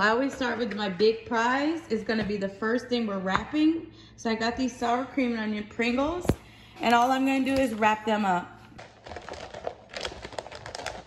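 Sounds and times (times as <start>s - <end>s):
wrapping paper crinkling: 8.8s - 11.0s.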